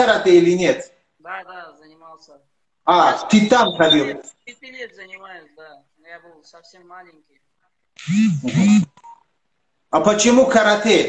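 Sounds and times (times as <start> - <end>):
man speaking: 0.0 - 7.6.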